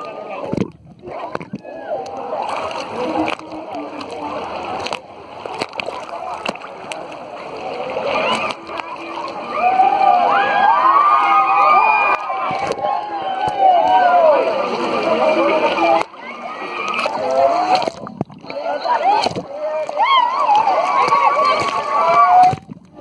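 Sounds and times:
people shouting and squealing: 0:00.0 - 0:03.9, 0:07.6 - 0:23.0
water sloshing and splashing: 0:00.0 - 0:23.0.

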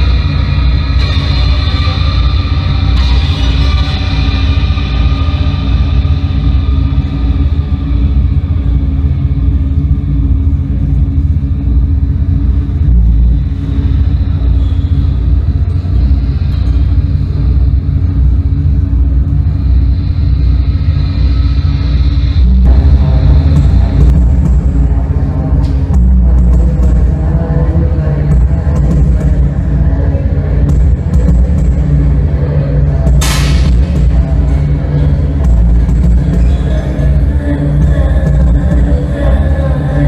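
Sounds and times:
rumbling electronic drone: 0:00.0 - 0:40.0.

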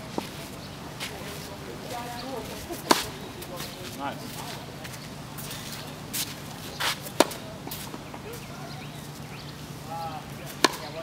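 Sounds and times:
tennis racket hitting ball: 0:07.1 - 0:07.8, 0:10.5 - 0:11.0.

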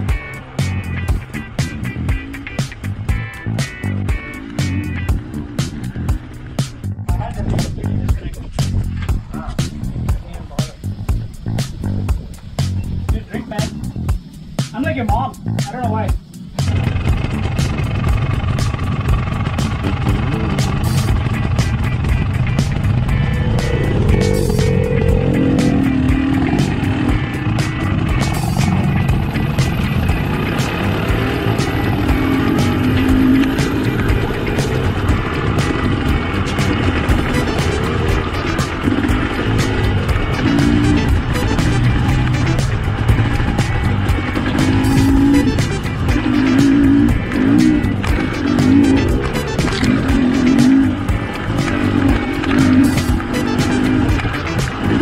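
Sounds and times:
dirt bike engine revving: 0:00.0 - 0:08.0, 0:10.9 - 0:55.0
wind buffeting: 0:04.9 - 0:14.8, 0:16.2 - 0:53.3.

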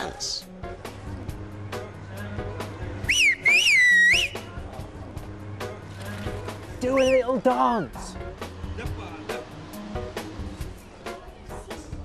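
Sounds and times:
background music with beat: 0:00.4 - 0:12.0
shrill finger whistle: 0:03.1 - 0:04.5, 0:06.8 - 0:07.3.

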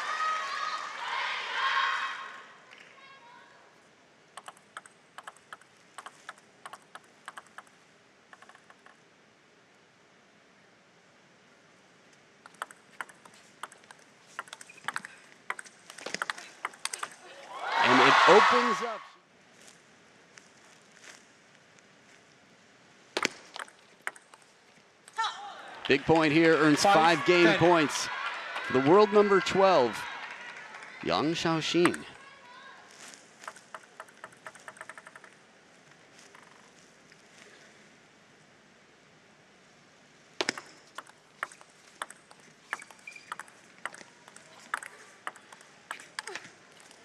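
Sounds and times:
ball clicking on bats and table: 0:04.4 - 0:09.0, 0:12.4 - 0:17.2, 0:23.2 - 0:24.5, 0:33.4 - 0:35.4, 0:40.4 - 0:47.0
table tennis ball bouncing: 0:04.4 - 0:09.0, 0:12.4 - 0:17.2, 0:23.2 - 0:24.5, 0:33.4 - 0:35.4, 0:40.4 - 0:46.4
player shouting: 0:17.2 - 0:19.2, 0:25.2 - 0:30.3.

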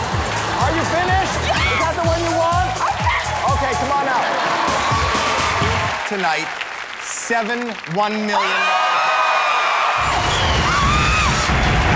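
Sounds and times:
audience cheering: 0:00.0 - 0:11.9
person yelling: 0:01.4 - 0:03.9.

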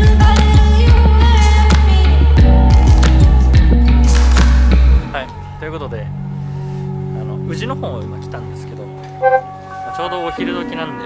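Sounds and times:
soft background music: 0:05.6 - 0:11.0.

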